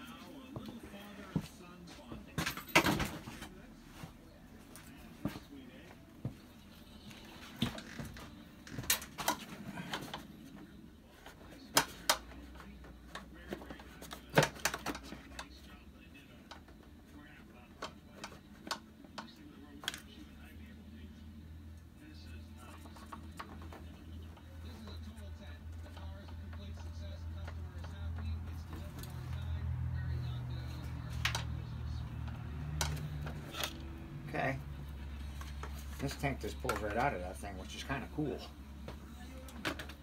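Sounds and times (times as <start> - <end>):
faint low hum: 0.0 - 40.0.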